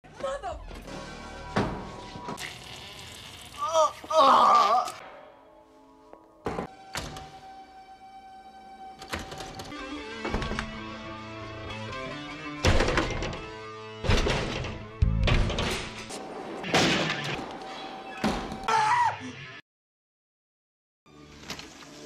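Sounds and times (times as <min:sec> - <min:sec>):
tense film score music: 0:00.1 - 0:02.3, 0:04.9 - 0:15.6.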